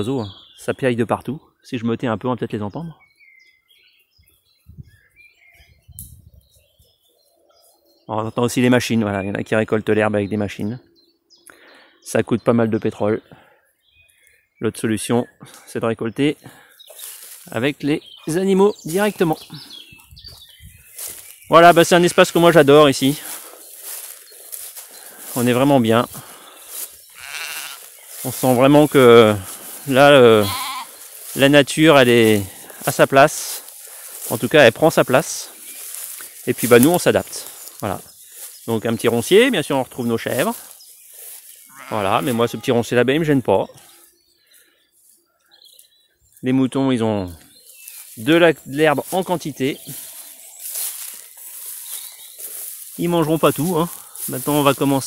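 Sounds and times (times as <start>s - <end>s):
grass rustling underfoot: 16.3s - 55.0s
sheep bleating: 21.7s - 22.6s, 27.1s - 27.9s, 30.1s - 31.0s, 41.6s - 42.9s.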